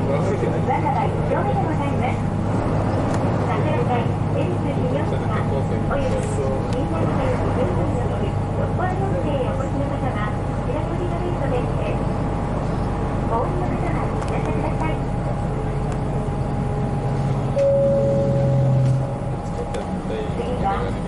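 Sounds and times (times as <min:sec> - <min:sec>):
bus engine drone: 0:00.0 - 0:21.0
road and running noise: 0:00.0 - 0:21.0.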